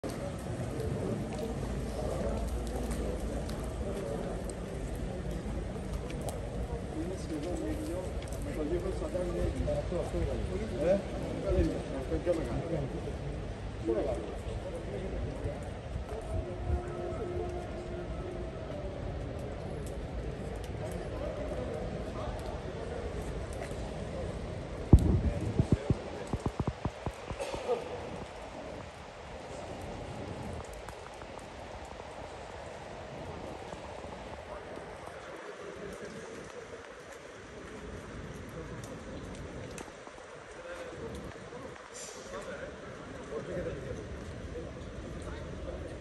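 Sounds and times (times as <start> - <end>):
hum of empty stadium: 12.4 - 46.0.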